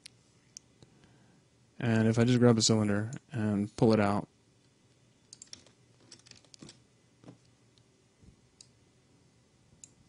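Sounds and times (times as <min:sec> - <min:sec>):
computer mouse clicks: 0:05.3 - 0:07.5.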